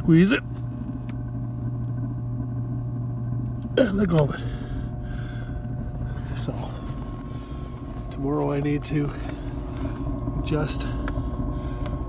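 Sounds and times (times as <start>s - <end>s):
fan humming: 0.0s - 12.0s
steady tones: 0.0s - 12.0s.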